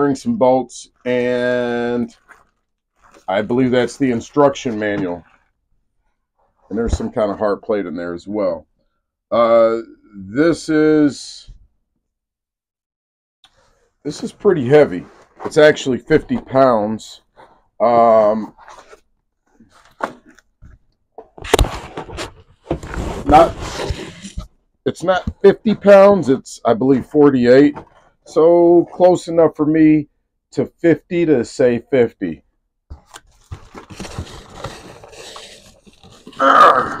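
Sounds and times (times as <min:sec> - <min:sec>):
cardboard and wrapping rustling: 0:00.8 - 0:07.6, 0:14.1 - 0:28.2, 0:32.9 - 0:36.5
cardboard box rustling and scraping: 0:21.3 - 0:24.5, 0:32.9 - 0:36.4
grunt of effort: 0:36.4 - 0:37.0.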